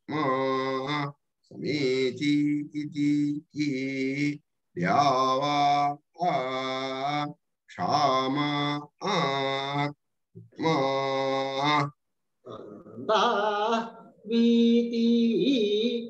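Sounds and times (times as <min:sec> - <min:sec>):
man chanting: 0:00.0 - 0:16.0.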